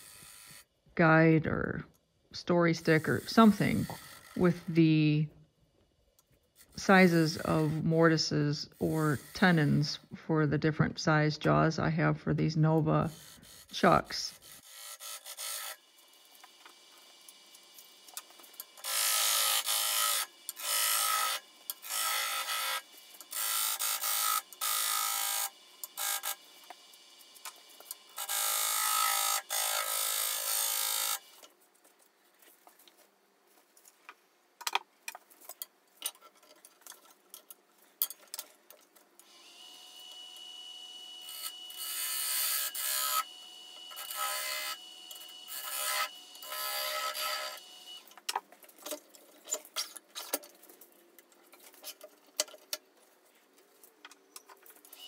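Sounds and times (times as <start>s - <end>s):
gouge scraping wood on lathe: 13.1s - 15.8s, 43.9s - 47.6s.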